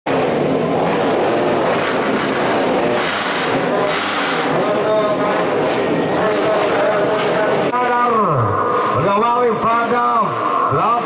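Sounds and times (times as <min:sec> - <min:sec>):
dirt bike engines revving: 0:00.1 - 0:11.0.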